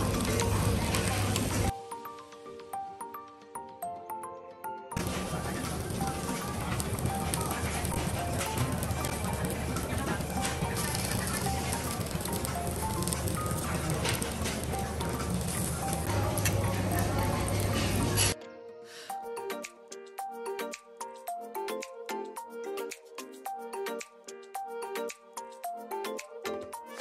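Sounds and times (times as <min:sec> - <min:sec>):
faint music: 0:00.0 - 0:27.0
meat sizzling on a griddle: 0:05.1 - 0:18.3.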